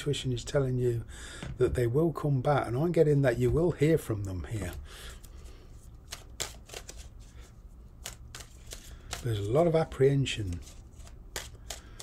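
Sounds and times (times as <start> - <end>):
low steady hum: 0.0 - 12.0
cards being shuffled: 4.5 - 12.0.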